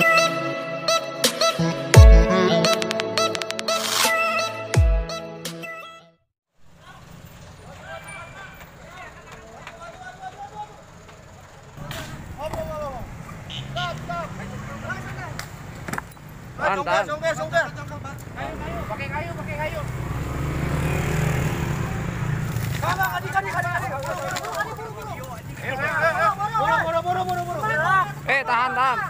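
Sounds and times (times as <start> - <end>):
low rumble of traffic: 6.6 - 29.0
distant shouting voices: 6.7 - 29.0
vehicle engine running: 6.7 - 29.0.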